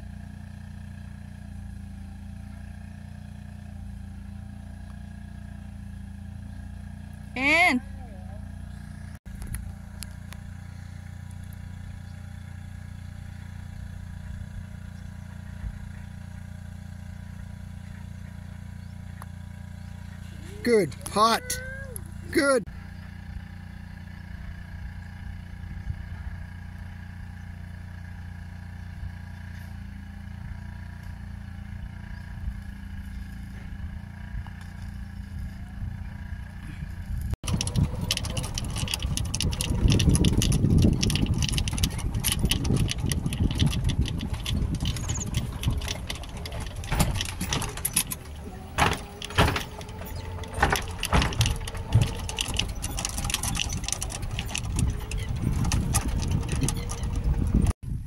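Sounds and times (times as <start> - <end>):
golf cart rumble: 0.0 - 58.0
wind on microphone: 36.8 - 47.8, 51.0 - 58.0
rattles and knocks: 37.4 - 57.8.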